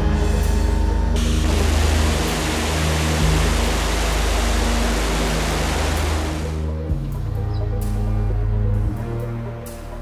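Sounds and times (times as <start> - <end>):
low background music: 0.0 - 10.0.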